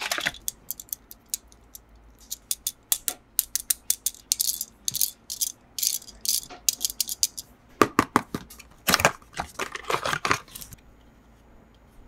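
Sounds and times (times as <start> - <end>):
packaging clicks and taps: 6.3 - 10.8
packaging crinkling: 8.8 - 10.8.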